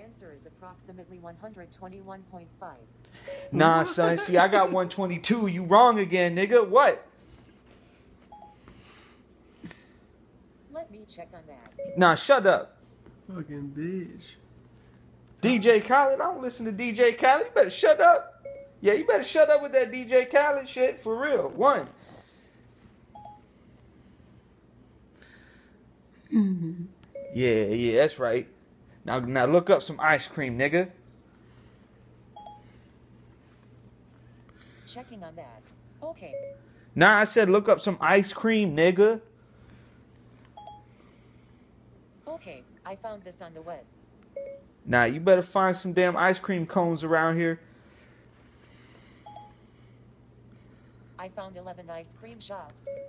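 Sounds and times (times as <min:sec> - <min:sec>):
low steady hum: 0:00.0 - 0:53.0
short electronic beep: 0:03.2 - 0:03.7, 0:11.8 - 0:12.1
faint electronic beeps: 0:03.2 - 0:04.4, 0:11.8 - 0:12.2.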